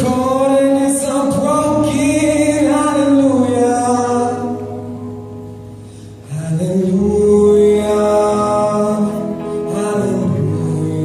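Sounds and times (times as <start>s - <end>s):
person singing long notes: 6.2s - 11.0s.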